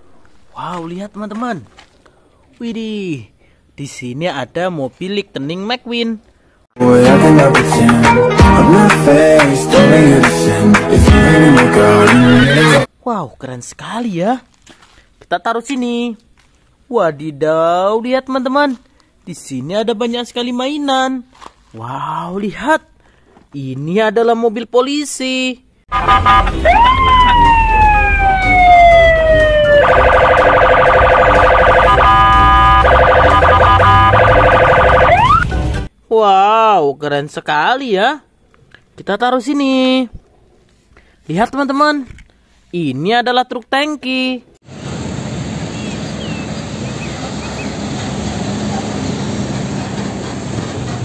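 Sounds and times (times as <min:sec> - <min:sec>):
police siren wailing and warbling: 0:25.9 - 0:35.5
tyre and road noise: 0:25.9 - 0:35.9, 0:44.6 - 0:51.0
diesel truck engine passing: 0:44.7 - 0:51.0.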